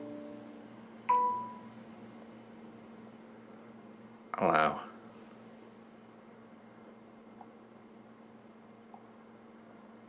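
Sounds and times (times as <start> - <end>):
electronic chord chime: 0.0 - 1.7
bright notification ding: 1.1 - 1.6.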